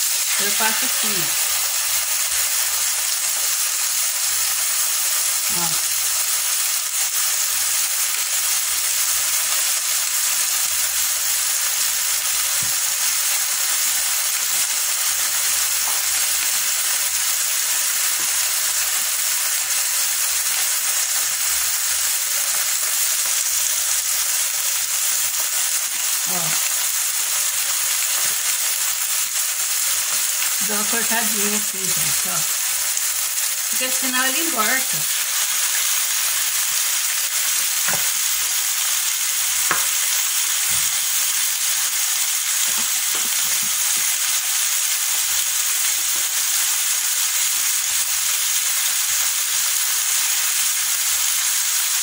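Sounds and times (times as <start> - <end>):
pork chops sizzling in a pan: 0.0 - 52.0.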